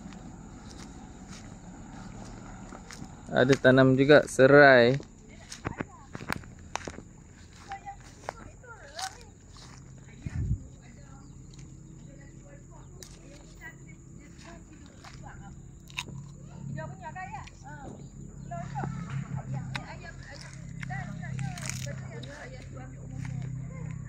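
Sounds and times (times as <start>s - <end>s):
soft footsteps: 0.0s - 16.4s, 17.4s - 24.0s.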